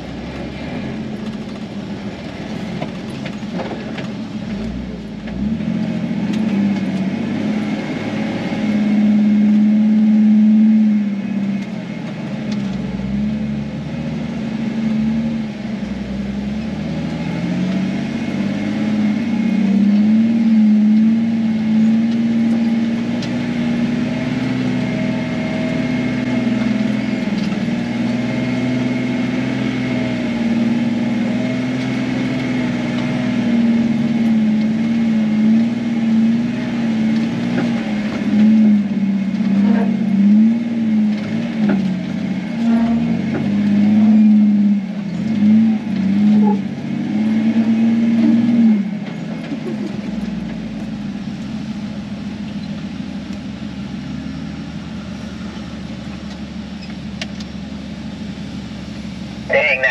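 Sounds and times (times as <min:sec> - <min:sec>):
car engine and drivetrain: 0:00.0 - 0:59.9.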